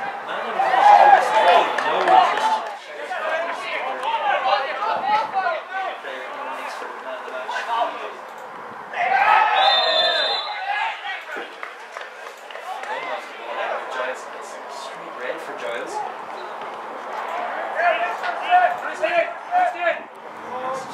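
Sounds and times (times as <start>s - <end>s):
players shouting: 0.0s - 8.2s, 8.8s - 20.9s
referee whistle blast: 9.5s - 10.7s.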